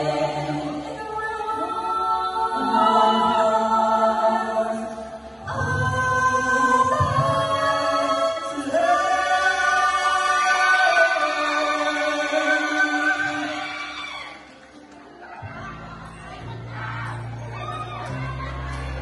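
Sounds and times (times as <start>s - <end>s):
women singing in harmony: 0.0s - 19.0s.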